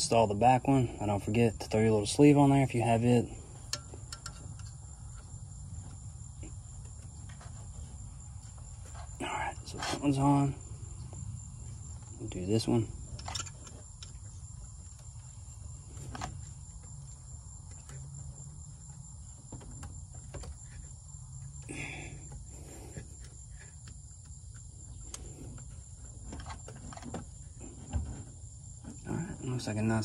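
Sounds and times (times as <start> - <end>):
crickets trilling: 0.0 - 30.0.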